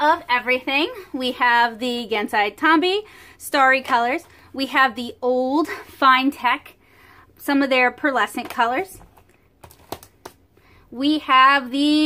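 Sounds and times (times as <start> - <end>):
plastic cases clicking on desk: 8.4 - 10.4.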